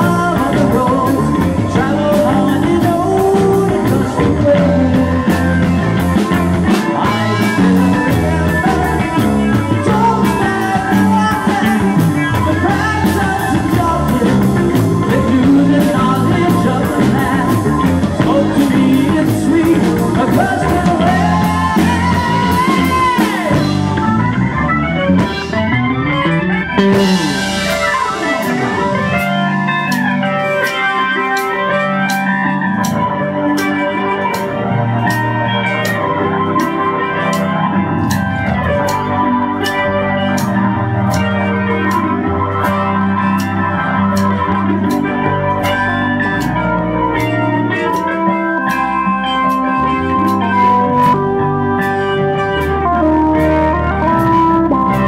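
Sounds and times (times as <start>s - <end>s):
bending electric guitar notes: 0.0s - 55.0s
rock band playing: 0.0s - 55.0s.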